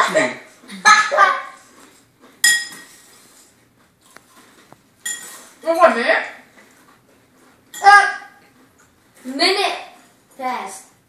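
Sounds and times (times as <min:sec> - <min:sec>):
metal spoon clinking on bowl: 0:02.4 - 0:02.9, 0:05.0 - 0:06.0.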